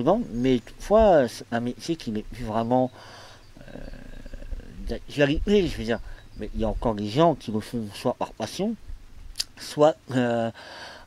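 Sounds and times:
man speaking: 0.0 - 3.0, 3.6 - 8.8, 9.4 - 10.6
man's creaky hesitation sound: 3.5 - 6.4.

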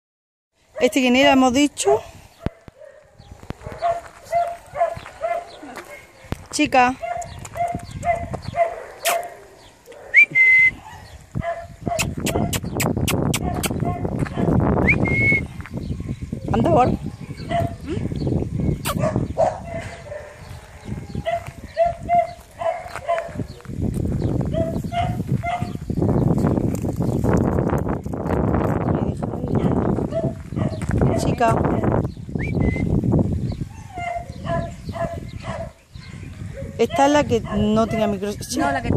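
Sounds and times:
scuffing on gravel and dry grass: 2.5 - 9.3, 13.4 - 14.8, 15.4 - 16.0, 19.8 - 32.0.

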